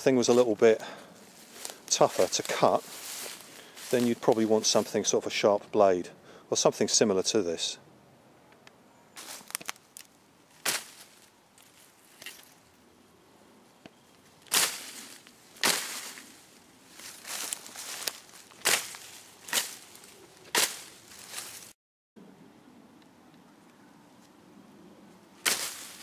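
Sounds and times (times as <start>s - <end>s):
blade swishing through grass: 1.4s - 4.4s, 10.6s - 12.6s, 14.4s - 21.7s, 25.4s - 26.0s.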